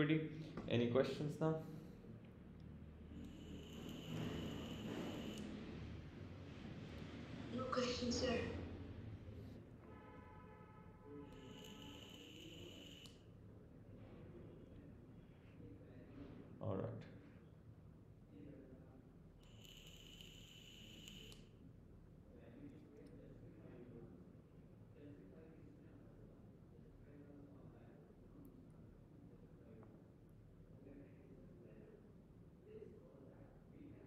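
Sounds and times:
thin high-pitched whine: 0:03.2 - 0:05.6, 0:11.1 - 0:13.2.

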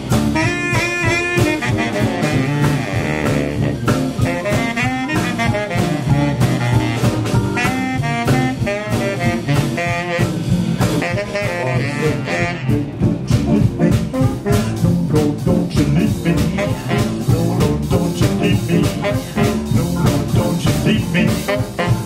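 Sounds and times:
drums and cymbals: 0:00.0 - 0:22.0
saxophones and trumpet: 0:00.0 - 0:22.0
swing band playing: 0:00.0 - 0:22.0.

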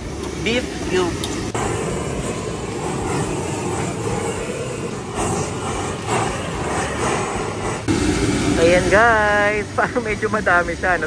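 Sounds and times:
blowtorch flame roaring: 0:00.0 - 0:11.0.

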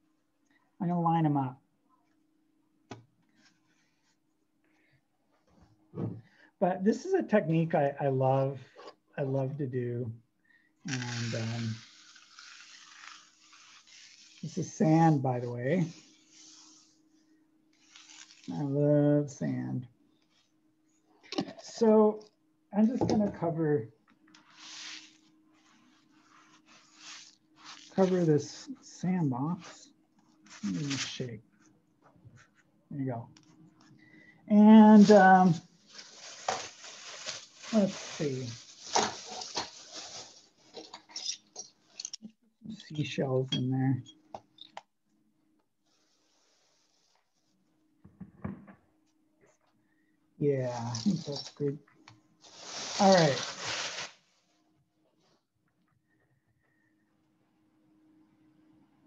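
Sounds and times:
sand trickling onto paper: 0:10.9 - 0:14.5, 0:17.8 - 0:18.5.

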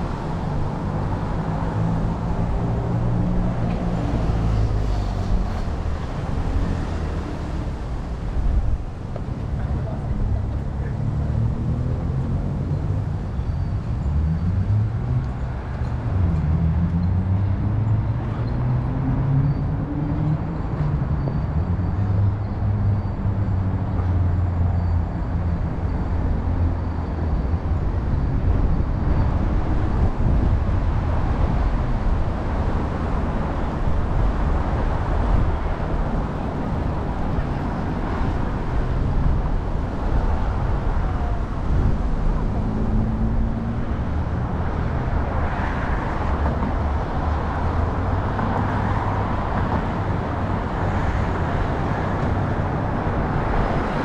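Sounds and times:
street traffic rumble: 0:00.0 - 0:54.0.

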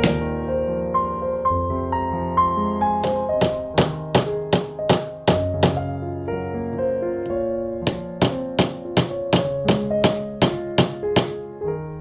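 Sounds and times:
hammer striking steel rod: 0:00.0 - 0:00.4, 0:03.0 - 0:05.9, 0:07.9 - 0:11.4.

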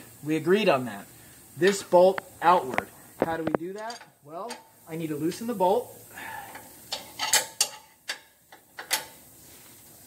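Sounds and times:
wrench clicking on bolt: 0:06.9 - 0:09.2.

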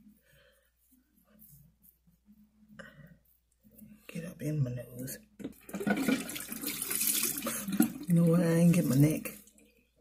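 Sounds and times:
person's voice: 0:04.1 - 0:05.3, 0:07.6 - 0:09.5
tap water running into sink: 0:05.4 - 0:09.4.

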